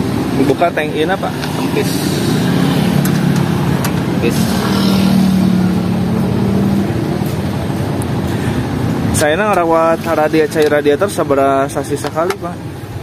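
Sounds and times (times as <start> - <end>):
road traffic noise: 0.0 - 13.0
vehicle engine droning: 0.0 - 13.0.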